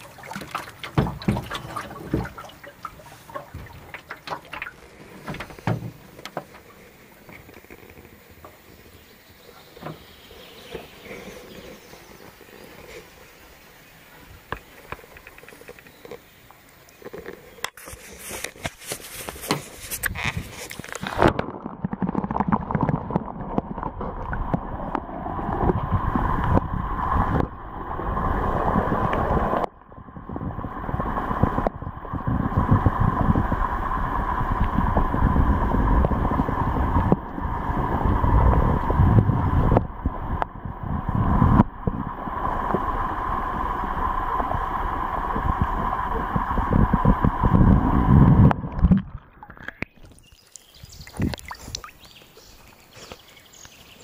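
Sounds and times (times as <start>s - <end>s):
muffled underwater rumble and gurgle: 0.0s - 53.5s
water rushing and splashing: 0.0s - 54.0s.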